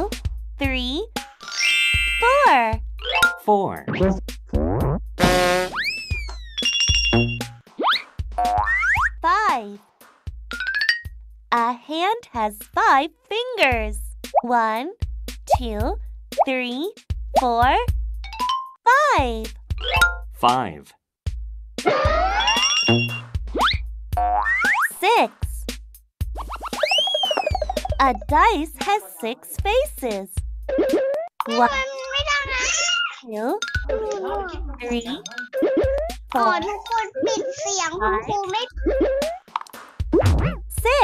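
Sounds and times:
children's music with bass beat: 0:00.0 - 0:09.6, 0:13.6 - 0:41.0
cartoon sliding pitch glides: 0:21.9 - 0:23.8, 0:26.6 - 0:28.2
cartoon whistle glides: 0:26.7 - 0:28.0.

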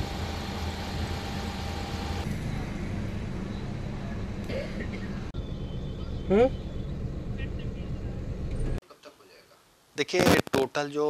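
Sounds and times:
low outdoor rumble: 0:00.0 - 0:08.8.

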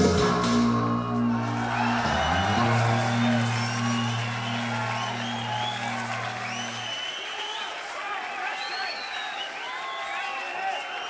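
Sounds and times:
band holding low note: 0:00.0 - 0:07.0
crowd cheering and whistling: 0:00.0 - 0:11.0.

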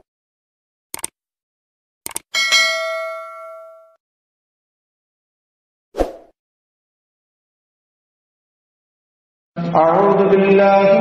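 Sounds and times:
notification bell ding: 0:02.4 - 0:04.0.

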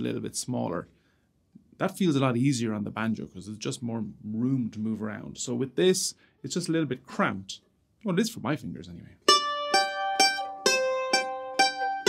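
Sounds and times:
mandolin notes picked slowly: 0:09.2 - 0:12.0.

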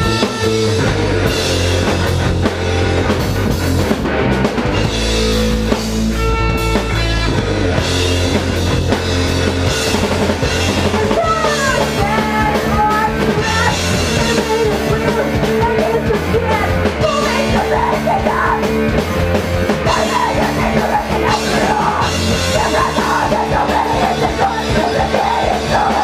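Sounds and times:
distorted electric guitars: 0:00.0 - 0:26.0
pounding drum kit: 0:00.0 - 0:26.0.

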